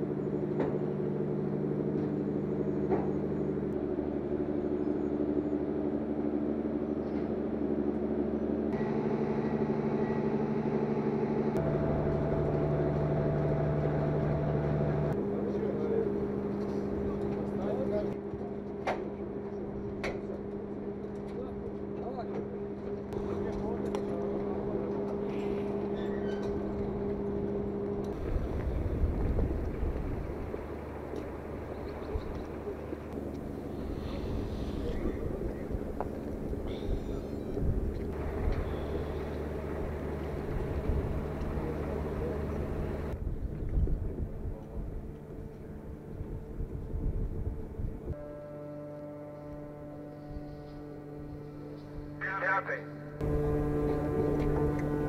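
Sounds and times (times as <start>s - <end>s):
low mechanical hum: 0.0s - 55.0s.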